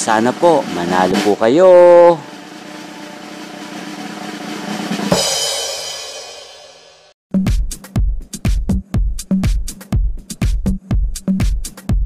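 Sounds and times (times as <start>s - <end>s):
cymbal crash: 0.0s - 7.2s
drum roll: 0.0s - 12.0s.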